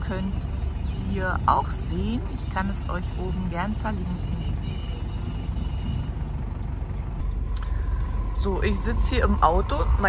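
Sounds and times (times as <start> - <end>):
road noise inside vehicle: 0.0 - 10.0
van engine rumble: 0.0 - 10.0.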